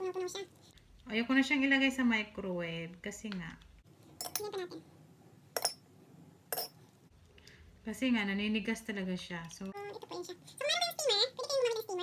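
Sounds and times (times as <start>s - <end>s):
metal spoon clinking ceramic bowl: 5.6s - 5.8s, 6.5s - 6.8s.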